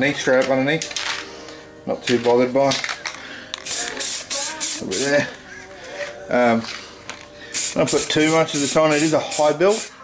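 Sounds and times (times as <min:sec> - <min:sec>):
aerosol spray hiss: 0:03.6 - 0:05.1, 0:07.5 - 0:10.0.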